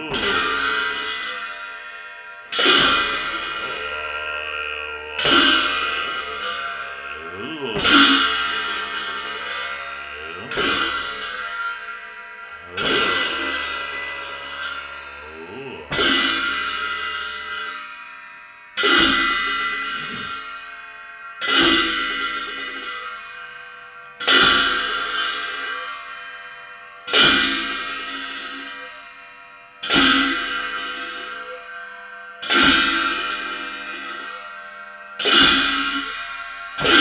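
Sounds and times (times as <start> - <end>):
hand cymbals crashing: 0.0 - 37.0.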